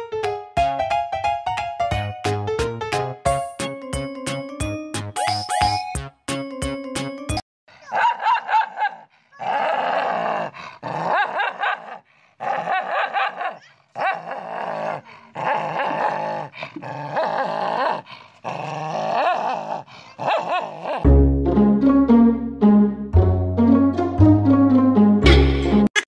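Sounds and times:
music: 0.0s - 7.4s, 21.1s - 25.9s
dog snarling and barking: 7.8s - 21.1s.

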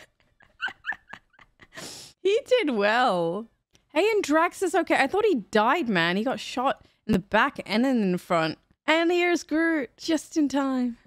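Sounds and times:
woman giggling: 0.0s - 2.0s.

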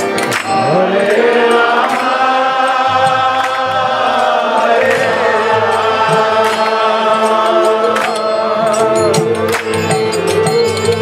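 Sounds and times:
drum strokes: 0.0s - 11.0s
harmonium: 0.0s - 11.0s
sharp percussion strikes: 0.0s - 11.0s
group chanting in unison: 0.4s - 9.1s.

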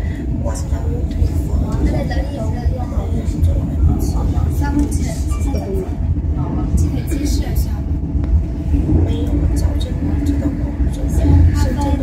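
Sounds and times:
passengers talking: 0.0s - 12.0s
train rumble inside carriage: 0.0s - 12.0s.

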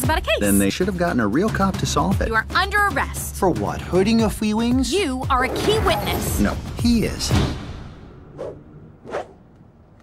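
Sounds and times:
quick swishes: 8.3s - 9.4s.

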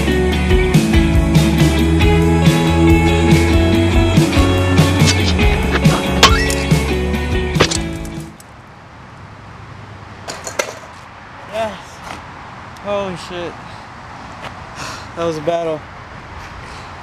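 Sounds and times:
guitar-driven rock music: 0.0s - 8.4s
skateboard clacking on pavement: 10.2s - 11.0s.

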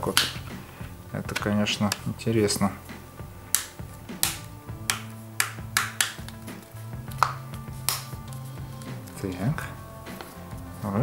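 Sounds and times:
plastic clips snapping: 0.0s - 0.4s, 3.5s - 6.5s, 7.1s - 8.4s
soft background music: 0.0s - 11.0s.

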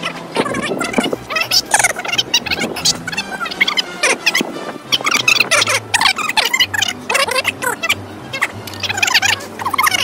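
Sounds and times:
background music: 0.0s - 10.0s
sped-up chattering voices: 0.0s - 10.0s.

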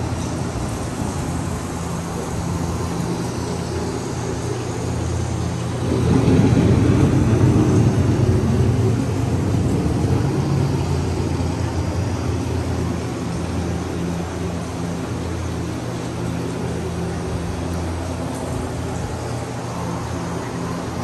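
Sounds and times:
rolling thunder rumble: 5.6s - 19.6s.

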